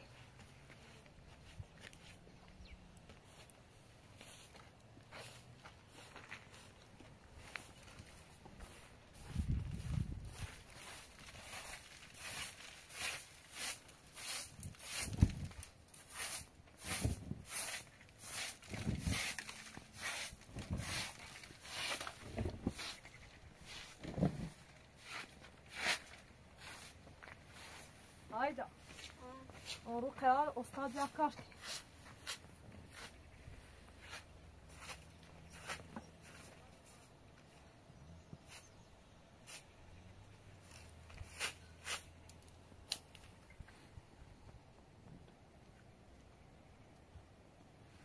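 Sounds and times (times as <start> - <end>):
broom sweeping carpet: 8.6 - 23.0, 23.6 - 28.2, 30.8 - 37.1, 39.4 - 39.7, 40.6 - 42.2
person speaking: 28.3 - 31.5.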